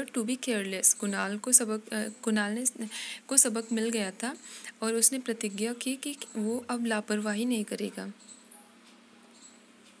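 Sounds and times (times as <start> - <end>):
person speaking: 0.0 - 8.2
faint room hiss: 0.0 - 10.0
faint high-pitched squeaks: 8.1 - 9.8.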